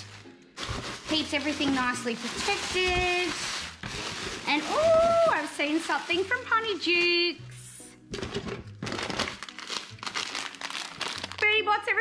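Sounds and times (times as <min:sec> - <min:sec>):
plastic packet crinkling: 0:00.0 - 0:06.9, 0:08.9 - 0:11.6
hands rummaging through packing material: 0:00.0 - 0:07.2, 0:08.2 - 0:11.5.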